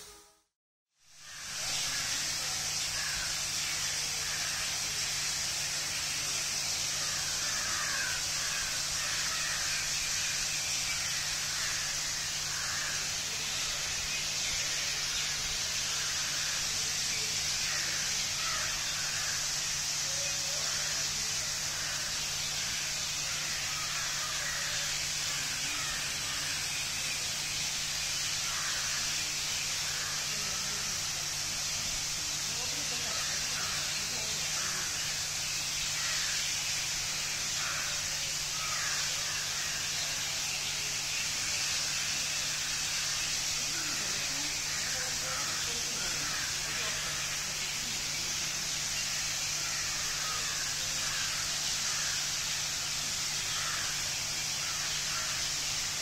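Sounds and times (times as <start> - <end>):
fountain water spraying and splashing: 1.3 - 56.0
faint indistinct voices: 11.5 - 35.3, 37.5 - 52.2.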